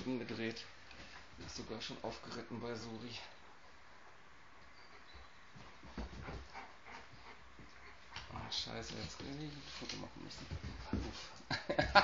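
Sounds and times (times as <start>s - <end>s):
dogs scuffling on a rug: 4.9s - 11.5s.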